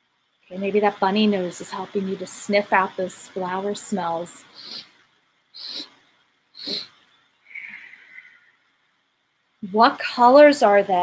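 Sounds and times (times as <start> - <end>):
breathy sound: 4.5 - 4.9, 5.6 - 6.0, 6.6 - 8.6
woman sniffing: 4.5 - 4.9, 5.6 - 6.0, 6.6 - 8.3.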